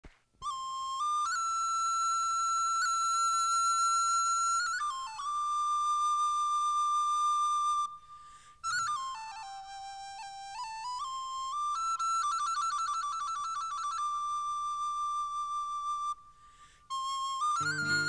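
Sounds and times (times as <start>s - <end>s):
high-pitched wind instrument melody: 17.2s - 18.0s.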